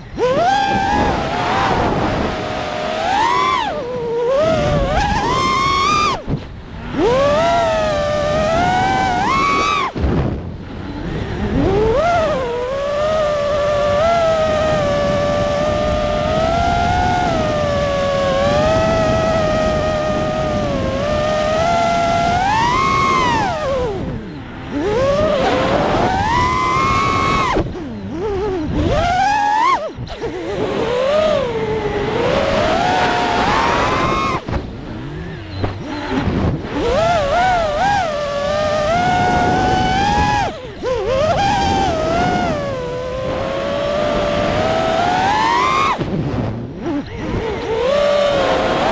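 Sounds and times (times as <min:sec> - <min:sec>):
drone motors and propellers whining: 0:00.0 - 0:48.9.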